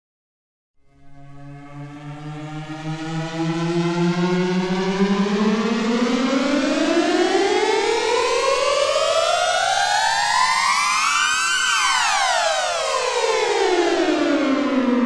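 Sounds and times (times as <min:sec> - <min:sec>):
siren-like wail in music: 0:01.0 - 0:15.0.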